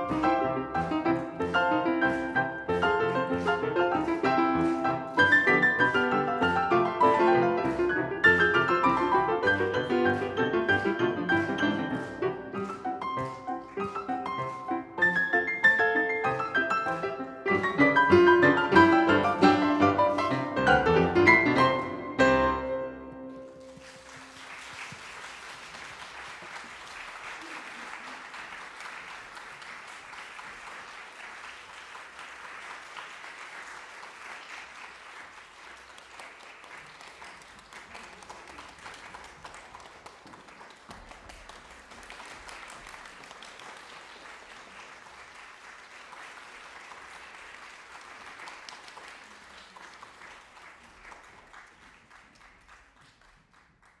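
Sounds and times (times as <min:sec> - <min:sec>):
audience applauding: 0:00.0 - 0:54.0.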